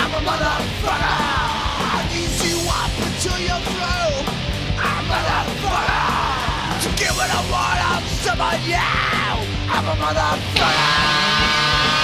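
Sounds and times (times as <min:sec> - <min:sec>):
punk rock song: 0:00.0 - 0:12.0
singer yelling: 0:00.0 - 0:12.0.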